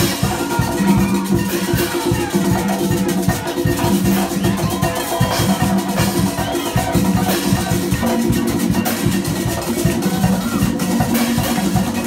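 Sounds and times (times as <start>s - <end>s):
percussion band drumming: 0.0s - 12.0s.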